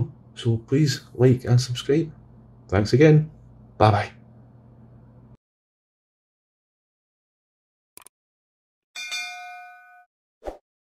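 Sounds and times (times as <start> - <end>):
notification bell ding: 9.0 - 10.1.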